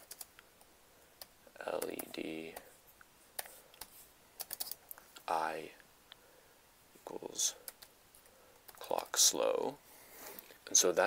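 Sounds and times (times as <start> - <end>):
computer keyboard typing: 0.0 - 0.4, 3.4 - 4.9, 7.6 - 9.0.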